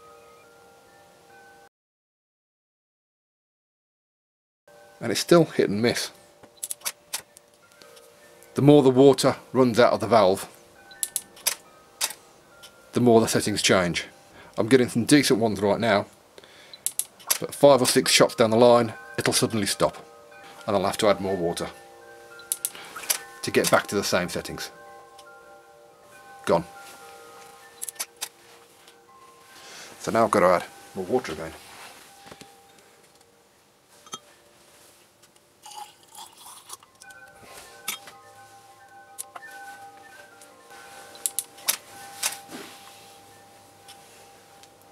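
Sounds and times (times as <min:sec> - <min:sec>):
faint steady background tones: 0:00.0 - 0:01.7, 0:04.7 - 0:44.9.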